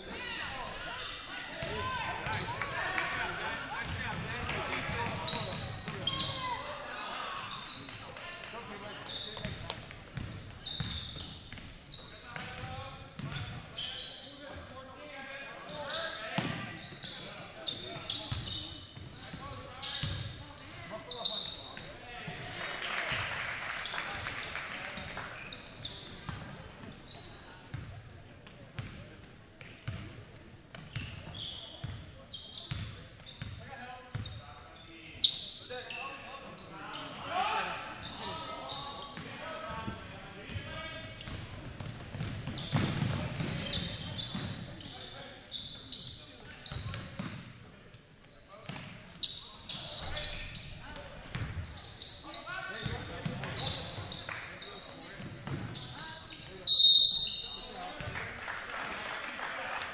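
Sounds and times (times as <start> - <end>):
voices in a gym: 0.0 - 59.9
sneakers squeaking on hardwood: 3.8 - 6.6, 7.5 - 14.7, 15.6 - 22.6, 25.4 - 28.1, 30.7 - 58.1
basketball bouncing: 41.2 - 43.6, 51.3 - 51.6.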